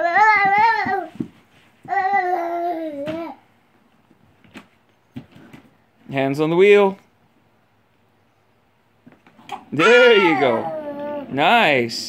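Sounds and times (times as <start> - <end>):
toddler babbling: 0.0 - 1.2, 1.9 - 3.4, 9.5 - 11.4.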